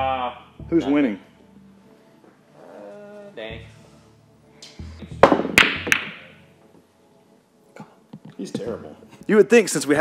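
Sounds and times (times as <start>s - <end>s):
billiard balls clacking: 5.1s - 6.4s.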